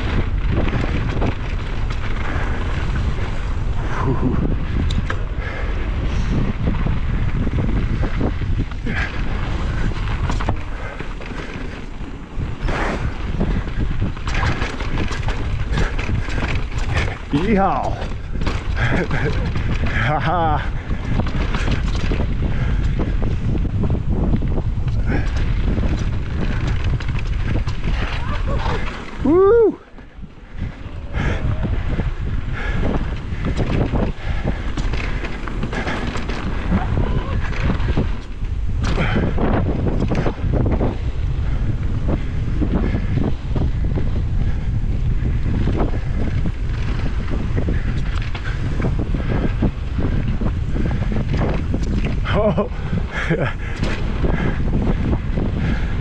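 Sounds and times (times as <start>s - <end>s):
bike knocking and rattling: 0.0s - 56.0s
wind buffeting microphone: 0.0s - 56.0s.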